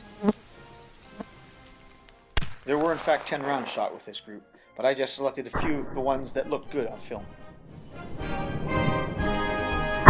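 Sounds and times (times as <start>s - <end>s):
insects buzzing: 0.0s - 2.1s.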